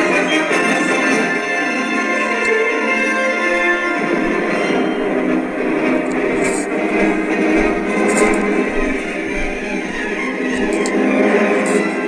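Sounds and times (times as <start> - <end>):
music from a television speaker: 0.0 - 12.0.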